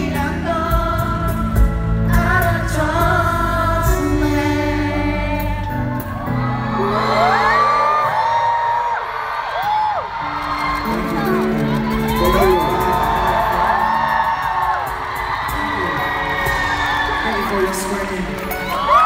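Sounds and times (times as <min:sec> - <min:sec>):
live band sustained chords: 0:00.0 - 0:08.4
crowd screaming and cheering: 0:03.8 - 0:19.0.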